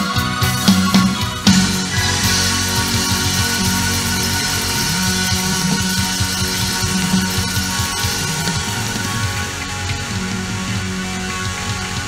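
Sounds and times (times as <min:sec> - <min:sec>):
bass guitar: 0:00.0 - 0:12.0
drums: 0:00.0 - 0:12.0
electric guitar: 0:00.0 - 0:12.0
keyboards: 0:00.0 - 0:12.0.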